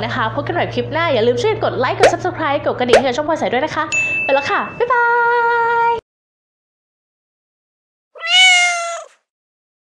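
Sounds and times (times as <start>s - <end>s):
meow-like call: 8.2s - 9.2s.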